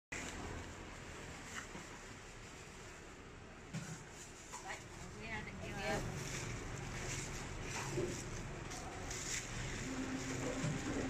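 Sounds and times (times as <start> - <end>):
plastic bags rustling: 4.0 - 11.0.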